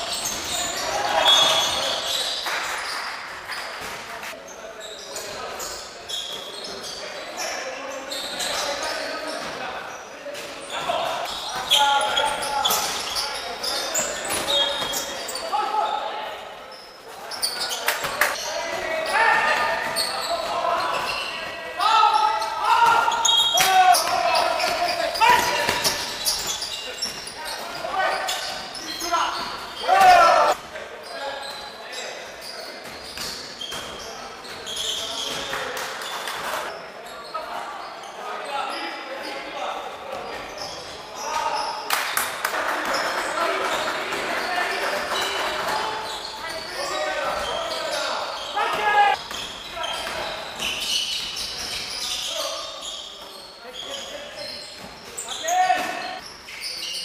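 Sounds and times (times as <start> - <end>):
players shouting with echo: 48.5 - 49.2.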